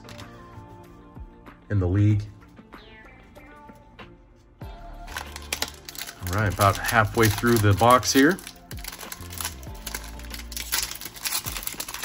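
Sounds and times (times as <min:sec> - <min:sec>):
foil wrappers crinkling: 0:05.0 - 0:12.0.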